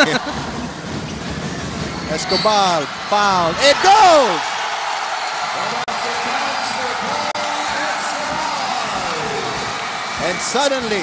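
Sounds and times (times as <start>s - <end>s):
arena crowd cheering: 0.0s - 11.0s.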